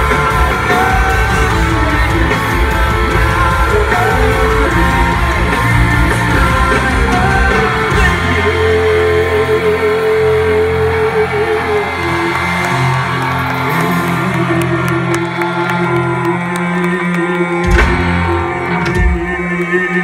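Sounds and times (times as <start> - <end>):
punk rock band playing live: 0.0 - 19.9.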